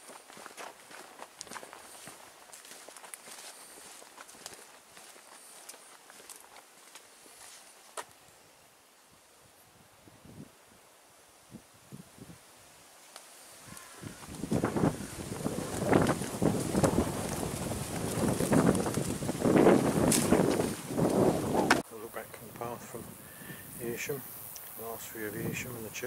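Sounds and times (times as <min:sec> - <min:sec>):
leaves and grass rustling: 0:00.0 - 0:26.0
wind buffeting microphone: 0:13.7 - 0:21.8
faint ticks: 0:24.5 - 0:24.8.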